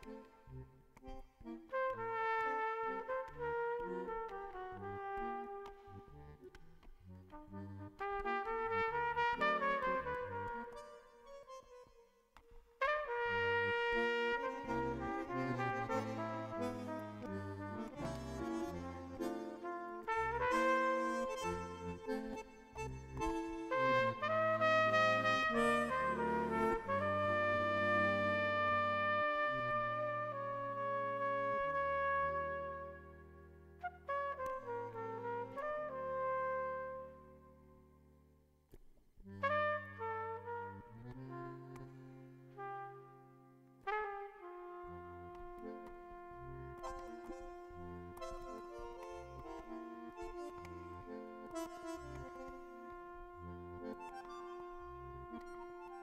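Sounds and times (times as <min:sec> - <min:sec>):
bandoneon chords: 0:00.0 - 0:38.1, 0:39.2 - 0:56.0
trumpet melody: 0:01.4 - 0:06.1, 0:07.5 - 0:11.5, 0:12.8 - 0:37.8, 0:39.4 - 0:41.8, 0:42.6 - 0:56.0.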